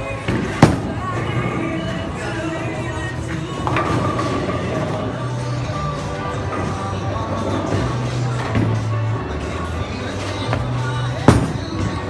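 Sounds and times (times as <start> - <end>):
bowling ball thud on lane: 11.3 - 12.0.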